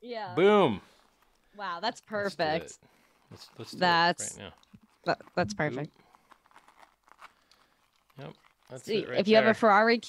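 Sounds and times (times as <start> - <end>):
faint rustling: 0.8 - 8.9.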